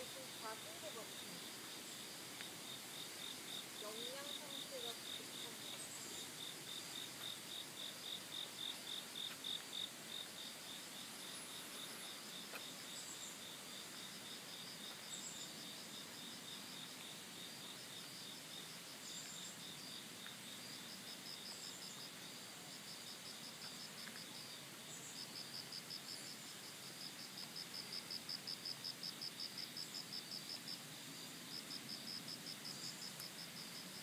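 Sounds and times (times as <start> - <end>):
insects chirping: 0.0 - 34.0.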